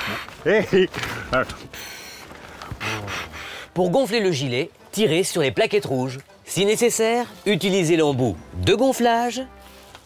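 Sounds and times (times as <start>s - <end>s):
breathy blowing into tube: 1.8s - 3.8s
voiced grunt: 2.8s - 3.5s.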